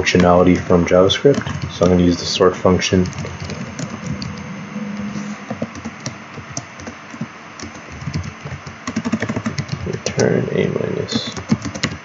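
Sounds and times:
computer keyboard typing: 0.0 - 4.5, 5.5 - 12.0.

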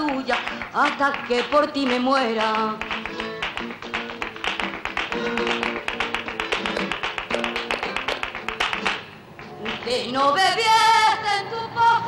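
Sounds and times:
person singing: 0.0 - 3.2, 9.5 - 12.0
flamenco guitar playing: 0.0 - 11.3
percussive taps on guitar: 1.2 - 9.9.

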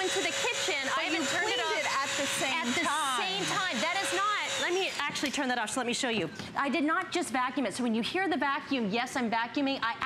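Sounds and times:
wet dry vacuum whining: 0.0 - 5.2
woman talking: 0.0 - 10.0.

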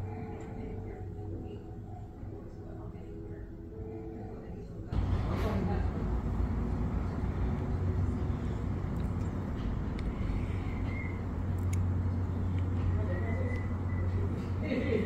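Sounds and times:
low mechanical rumble: 0.0 - 15.0.

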